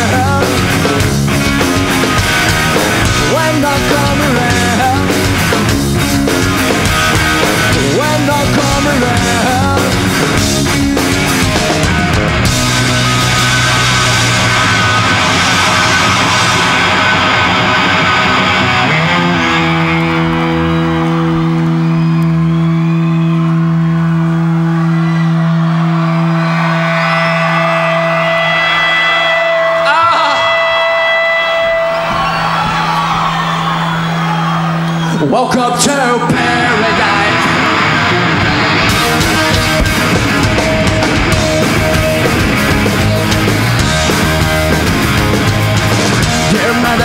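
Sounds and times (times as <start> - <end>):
electric guitar feedback: 0.0 - 47.0
punk rock band playing: 0.0 - 47.0.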